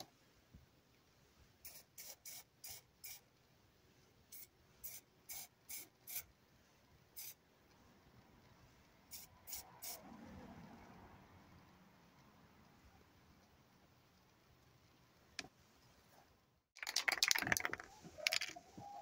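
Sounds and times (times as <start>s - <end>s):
spray can hissing: 1.6s - 3.2s.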